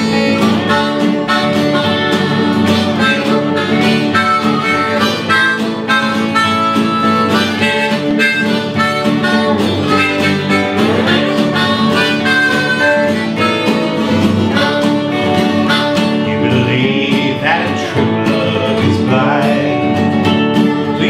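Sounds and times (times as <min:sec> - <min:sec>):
harmonica lead: 0:00.0 - 0:21.0
lap steel slide guitar: 0:00.0 - 0:21.0
strummed acoustic guitar: 0:00.0 - 0:21.0.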